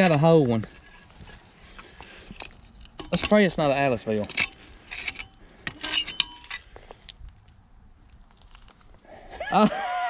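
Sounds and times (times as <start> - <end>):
digging fork scraping dirt: 0.0 - 7.2.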